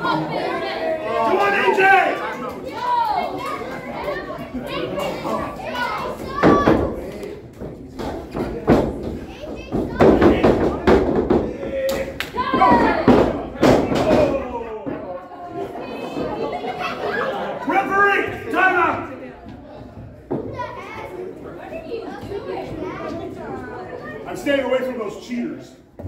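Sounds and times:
spectators shouting: 0:00.0 - 0:04.0.

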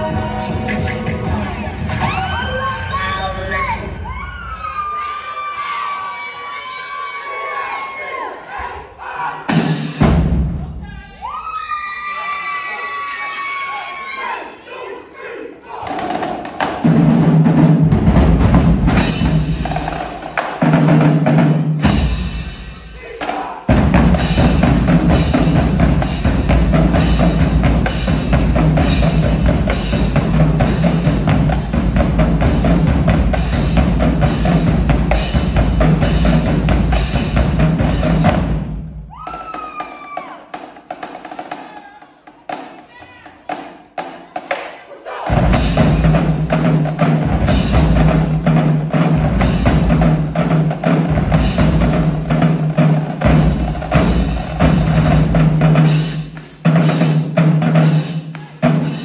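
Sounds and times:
snare drums: 0:09.4 - 0:10.8, 0:15.8 - 0:59.0
bass drums: 0:15.9 - 0:23.0, 0:23.7 - 0:39.6, 0:45.3 - 0:59.0
cymbals: 0:18.2 - 0:59.0.

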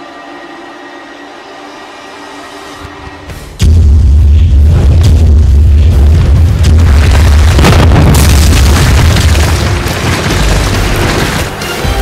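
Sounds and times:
deep boom of shattering rock: 0:03.6 - 0:11.5.

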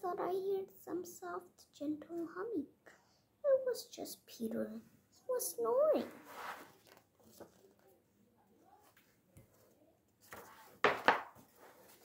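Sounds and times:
book pages rustling: 0:06.1 - 0:08.0, 0:08.7 - 0:12.0.

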